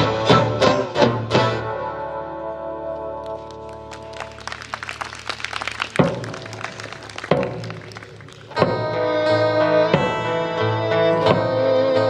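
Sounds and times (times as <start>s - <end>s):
drum kit taps and clicks: 5.8s - 8.7s.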